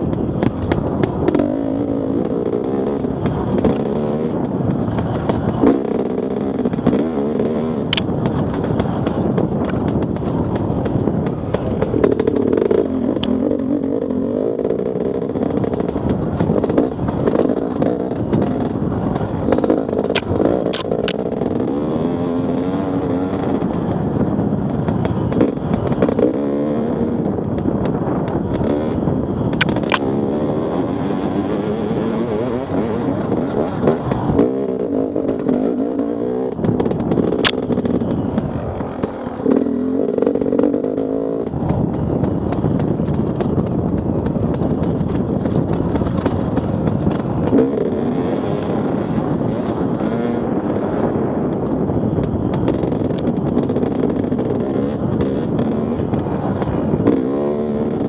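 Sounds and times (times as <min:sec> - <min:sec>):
motorcycle clatter: 0:00.0 - 0:58.0
motorcycle engine revving: 0:00.0 - 0:58.0
sharp clicks: 0:14.7 - 0:21.6, 0:29.5 - 0:30.1, 0:33.2 - 0:47.9.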